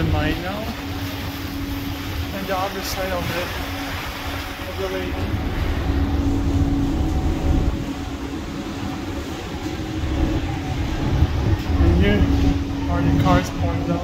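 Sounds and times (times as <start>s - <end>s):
ferry engine hum: 0.0s - 14.0s
wind on microphone: 0.0s - 14.0s.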